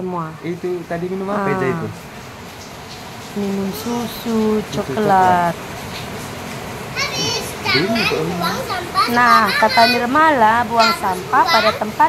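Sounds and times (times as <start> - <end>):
young child babbling: 1.5 - 1.9, 7.0 - 10.2, 10.8 - 12.0.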